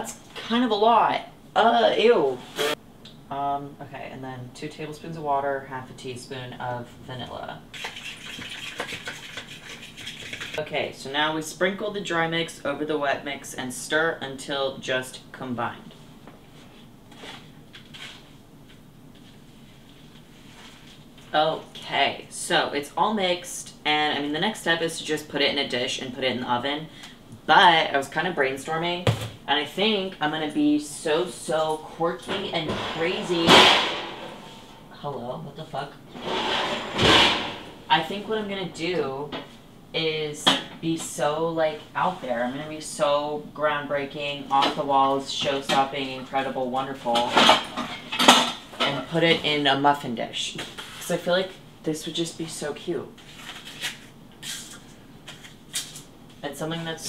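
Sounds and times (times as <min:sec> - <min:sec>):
liquid sloshing in bowl: 0:07.7 - 0:10.6.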